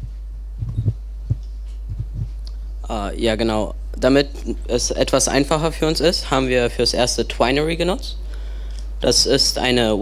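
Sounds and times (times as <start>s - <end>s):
microphone handling thumps: 0.0s - 2.4s
low electrical hum: 0.0s - 10.0s.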